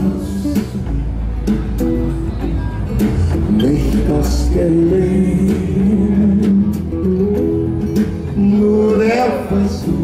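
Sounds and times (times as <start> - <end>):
steady bass: 0.0 - 10.0
strummed acoustic guitar: 0.0 - 10.0.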